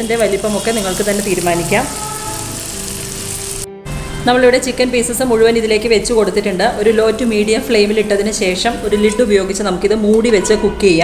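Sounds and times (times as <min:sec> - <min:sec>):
chicken sizzling in a frying pan: 0:00.0 - 0:03.7.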